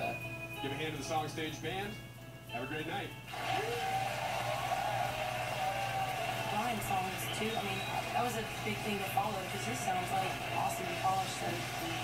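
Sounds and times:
audience applauding and cheering: 3.3s - 12.0s.

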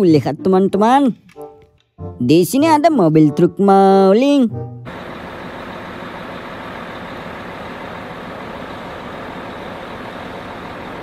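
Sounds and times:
diesel truck engine running: 4.9s - 11.0s.

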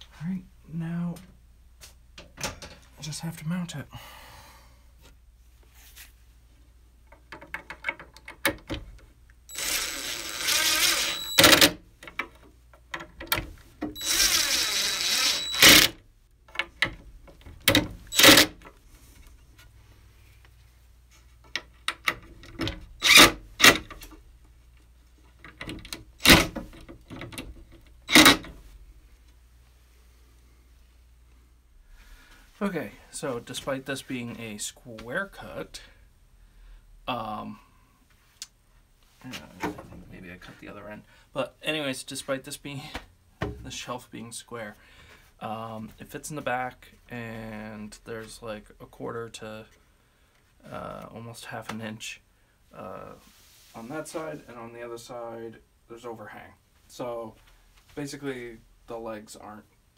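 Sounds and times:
cordless drill whining: 9.5s - 11.7s, 14.0s - 16.0s.

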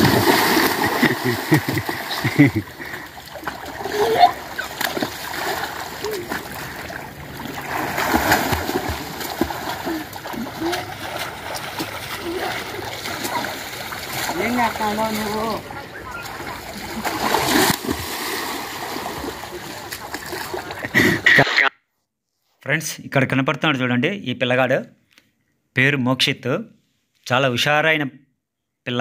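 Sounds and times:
water splashing: 0.0s - 21.2s
voices shouting: 9.7s - 17.2s.

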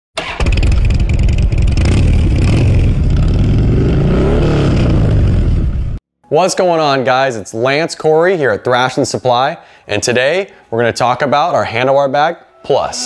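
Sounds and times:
motorcycle engine revving: 0.2s - 6.0s.

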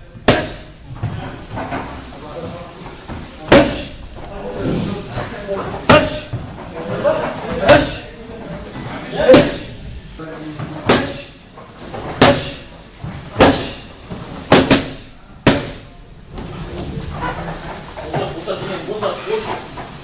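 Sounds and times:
boxing gloves striking focus mitts: 0.2s - 1.1s, 3.1s - 4.0s, 10.8s - 11.4s, 12.0s - 16.5s
soft shuffling: 0.7s - 10.8s.

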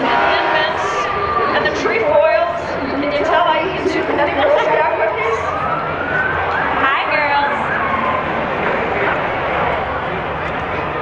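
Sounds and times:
crowd chatter: 0.0s - 11.0s
truck engine rumble: 0.0s - 11.0s.

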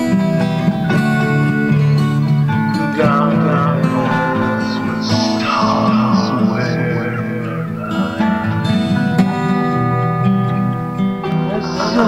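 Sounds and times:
plucked acoustic guitar: 0.0s - 12.0s.

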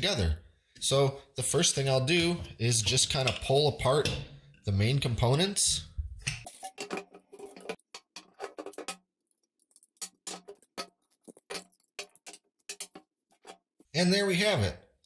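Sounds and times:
plastic pipes clicking and knocking: 2.1s - 4.4s, 5.3s - 13.9s.

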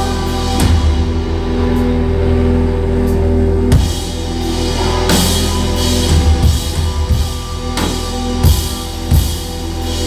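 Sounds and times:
rock band sustained chord: 0.0s - 10.0s.

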